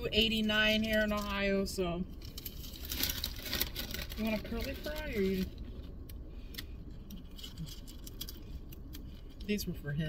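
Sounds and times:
paper packaging crinkling: 0:02.2 - 0:05.6.

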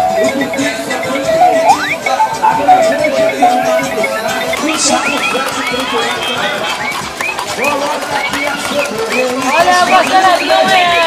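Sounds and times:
toy chirping tones: 0:00.0 - 0:11.0.

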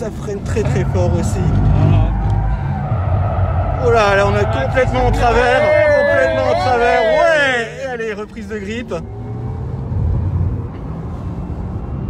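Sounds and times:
low rumble of tyres and road: 0:00.0 - 0:12.0
man exclaiming: 0:04.8 - 0:08.1.

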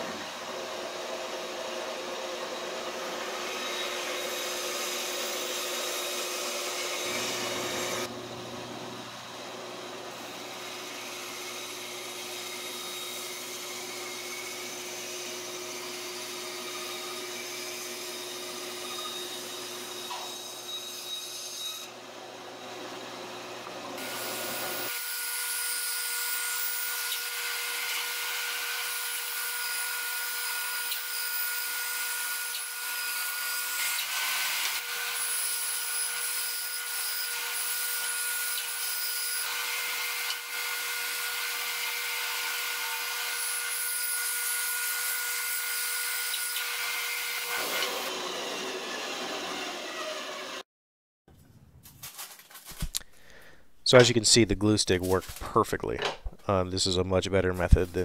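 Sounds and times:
bandsaw cutting wood: 0:00.0 - 0:08.2, 0:09.1 - 0:50.6.

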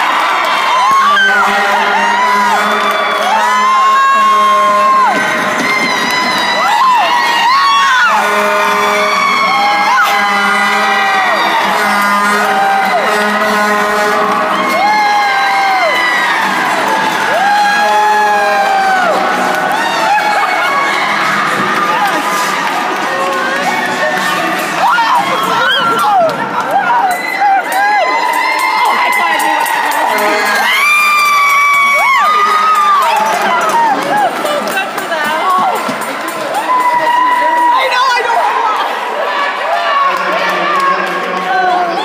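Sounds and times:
crowd cheering and screaming: 0:00.0 - 0:42.0.

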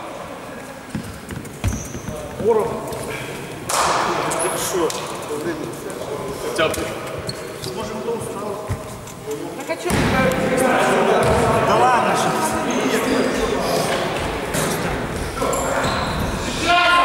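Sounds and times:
players talking and calling out: 0:00.0 - 0:17.0
basketball bouncing on gym floor: 0:00.9 - 0:02.6, 0:09.8 - 0:10.4.

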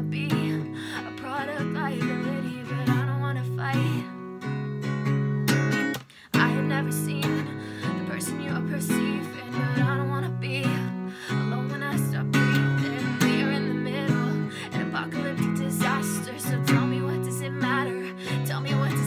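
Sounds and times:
acoustic guitar strumming: 0:00.0 - 0:19.0
woman singing: 0:00.0 - 0:19.0.

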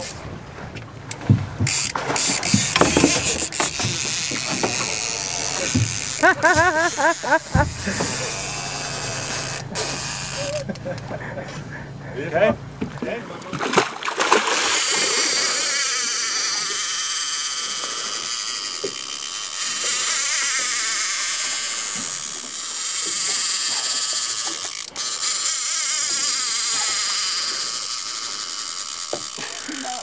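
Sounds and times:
fishing reel drag screaming: 0:01.7 - 0:11.0, 0:14.4 - 0:30.0.

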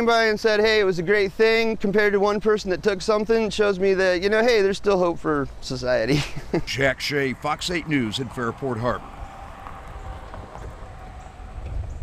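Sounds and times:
faint steady hum: 0:05.5 - 0:12.0
low rumble: 0:06.5 - 0:12.0.

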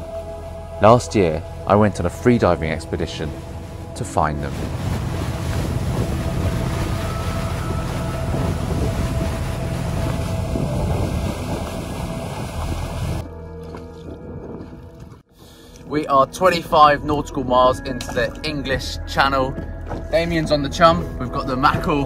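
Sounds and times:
background music: 0:00.0 - 0:22.0
sea and wind rumble: 0:00.0 - 0:22.0.

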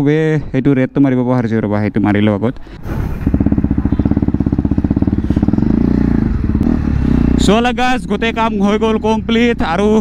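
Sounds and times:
motorcycle engine running: 0:02.8 - 0:10.0.

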